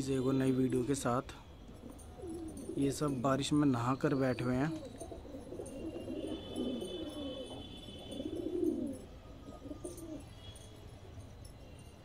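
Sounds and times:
pigeons cooing: 0:01.6 - 0:10.4.

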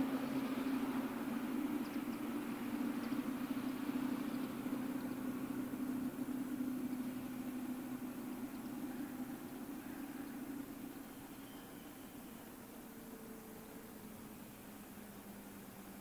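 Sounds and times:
distant diesel railcar engine hum: 0:00.0 - 0:16.0.

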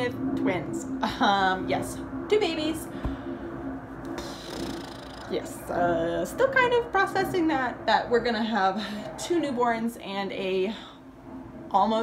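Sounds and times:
low hum with rumble: 0:00.0 - 0:12.0.

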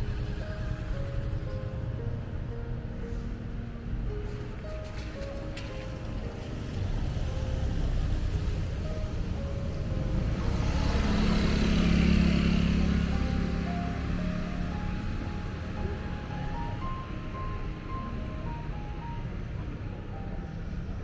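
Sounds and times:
background music with short notes: 0:00.0 - 0:21.0
vehicle passing: 0:00.0 - 0:21.0.

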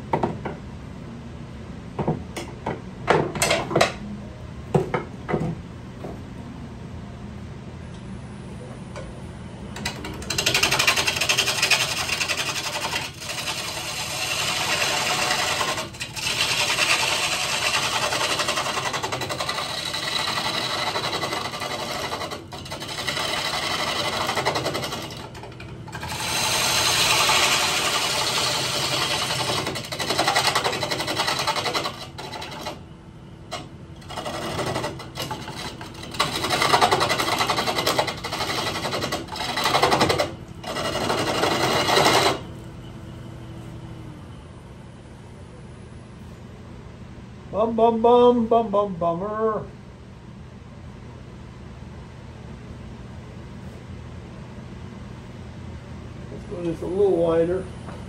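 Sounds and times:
lathe running hum: 0:09.2 - 0:45.4
gouge cutting wood on lathe: 0:09.8 - 0:32.8, 0:33.5 - 0:42.5.

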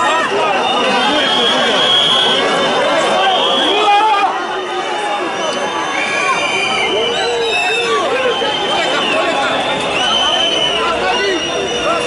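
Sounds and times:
crowd shouting and talking: 0:00.0 - 0:12.0
high-pitched whistles: 0:05.3 - 0:12.0.

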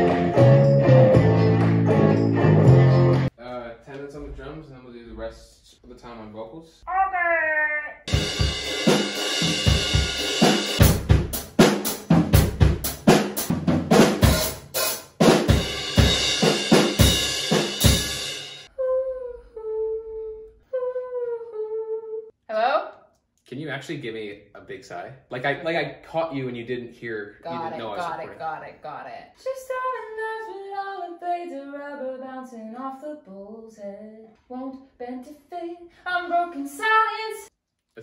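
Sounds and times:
electric bass guitar: 0:00.0 - 0:03.3
guitar: 0:00.0 - 0:03.3, 0:27.4 - 0:28.4
woman singing wordless line: 0:06.9 - 0:08.1, 0:18.7 - 0:22.3, 0:27.5 - 0:28.3, 0:29.4 - 0:37.5
quiet voice: 0:27.4 - 0:28.6.

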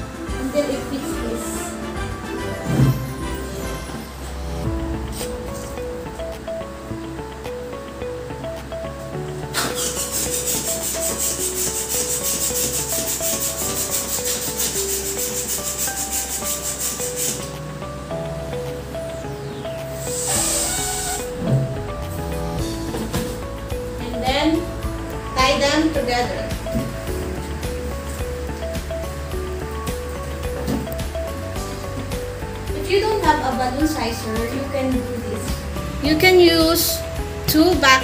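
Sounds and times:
background music: 0:00.0 - 0:38.0
hand pump inflating balloon: 0:09.5 - 0:17.6, 0:20.0 - 0:21.6.

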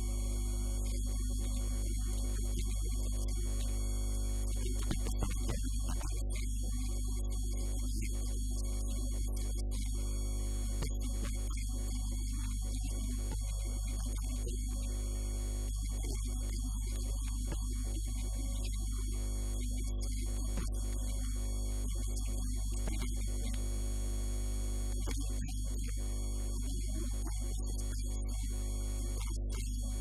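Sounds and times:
electrical mains hum: 0:00.0 - 0:17.6.

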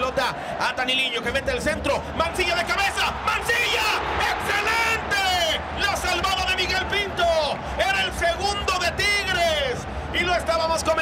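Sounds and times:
man commentating excitedly: 0:00.0 - 0:11.0.

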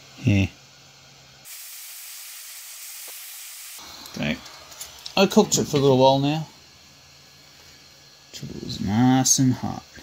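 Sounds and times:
hot-air tool hissing: 0:00.8 - 0:10.0.

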